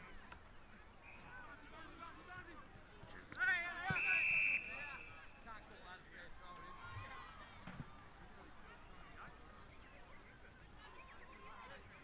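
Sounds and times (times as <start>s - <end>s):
distant shouts and calls: 3.2s - 8.2s, 8.8s - 12.0s.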